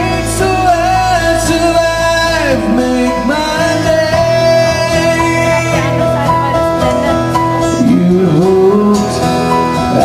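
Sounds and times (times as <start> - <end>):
man singing into a microphone: 0.0 - 6.3, 7.5 - 10.0
acoustic band with guitar: 0.0 - 10.0.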